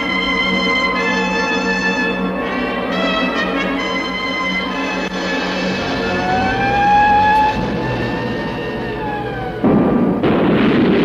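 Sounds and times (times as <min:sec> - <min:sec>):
theme music with held note: 0:00.0 - 0:10.3
rocket engines roaring: 0:00.0 - 0:11.0.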